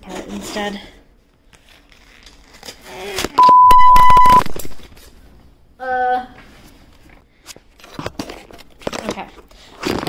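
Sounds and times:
censor bleep: 3.4 - 4.4.

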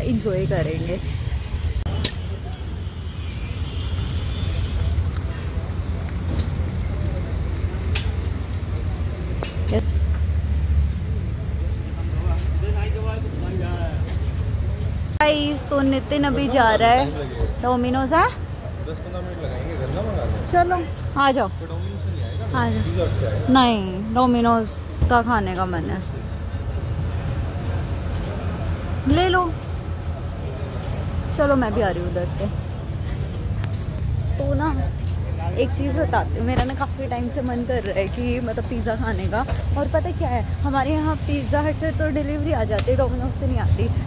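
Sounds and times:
low traffic rumble: 0.0 - 44.0.

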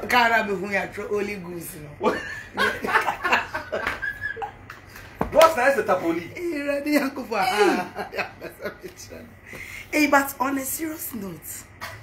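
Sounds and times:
woman speaking: 0.0 - 2.2, 5.4 - 11.8
woman laughing: 2.0 - 4.7, 7.0 - 9.4.

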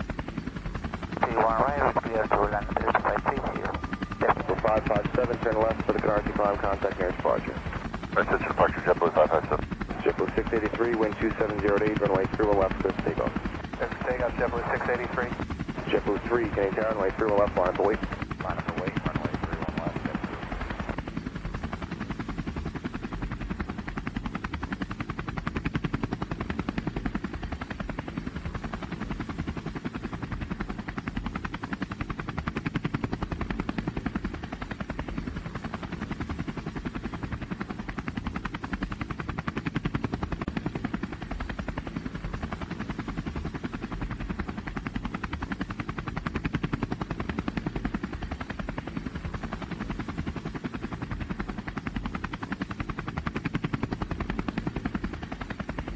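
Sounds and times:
drone propellers buzzing: 0.0 - 55.9
radio voice: 1.2 - 20.4.

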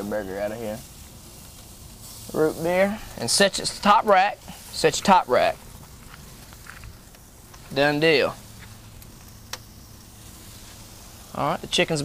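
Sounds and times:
meat sizzling on a grill: 0.0 - 12.0.

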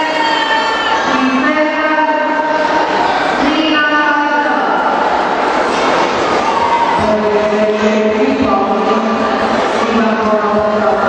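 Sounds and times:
crowd of voices shouting: 5.0 - 7.2.

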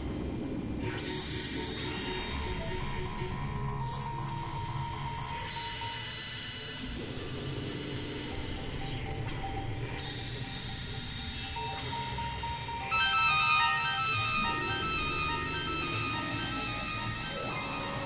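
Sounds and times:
electronic drone music: 8.5 - 18.0.

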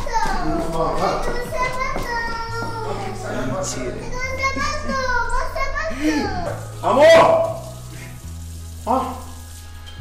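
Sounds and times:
water running from sink tap: 0.0 - 10.0
man washing face: 6.0 - 10.0.

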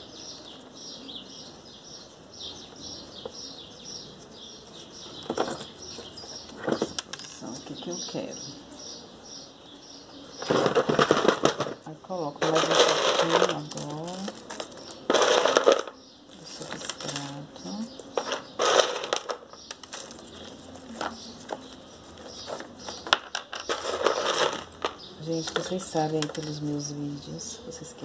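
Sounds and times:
potting mix crunching and clattering: 10.3 - 26.9.

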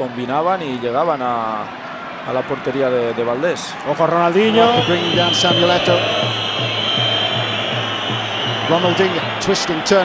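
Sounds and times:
stadium crowd roaring: 0.0 - 10.0
background music beat: 4.6 - 9.9.

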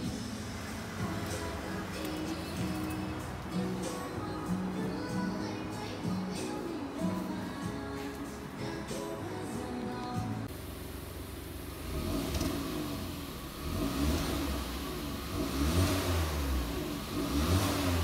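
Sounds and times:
car engine revving: 0.0 - 4.8, 10.5 - 18.0
background music: 0.0 - 10.5.

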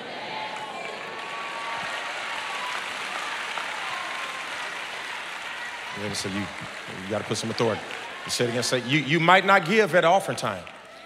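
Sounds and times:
congregation applauding: 0.0 - 11.0.

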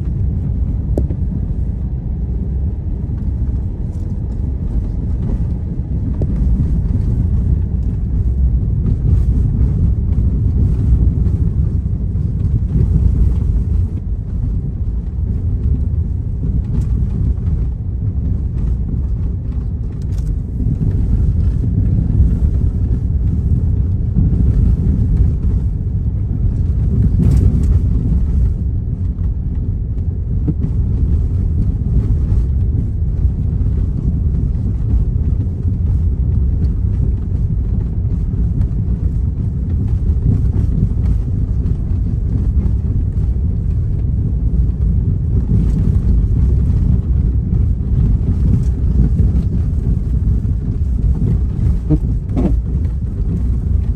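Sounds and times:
car engine and road noise: 0.0 - 53.9.

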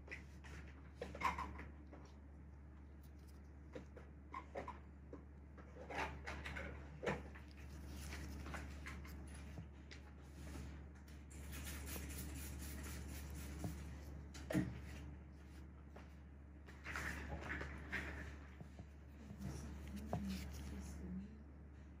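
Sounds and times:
small clicks and rustles: 0.0 - 12.3
steady low hum: 0.0 - 22.0.

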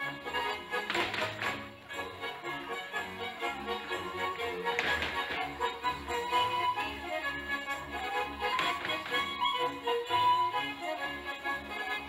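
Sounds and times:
folk dance music: 0.0 - 12.0
shoes tapping on stage floor: 0.8 - 1.8, 4.7 - 5.7, 8.4 - 9.4
shoe scuff: 4.8 - 5.4.

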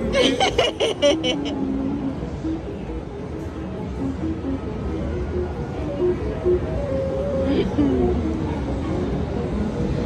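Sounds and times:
simple tune of held notes: 3.9 - 8.6.

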